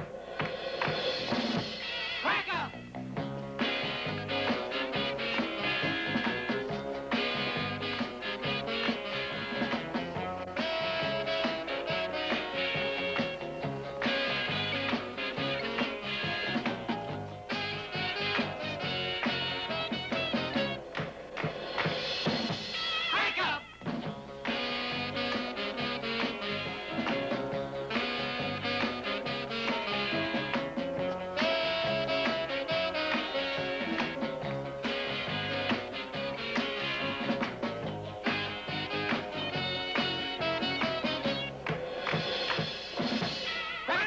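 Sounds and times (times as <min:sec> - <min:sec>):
surf rock band playing: 0:00.0 - 0:44.0
stepping bass notes: 0:02.4 - 0:20.9, 0:24.0 - 0:41.8
drum kit strikes: 0:03.0 - 0:22.9.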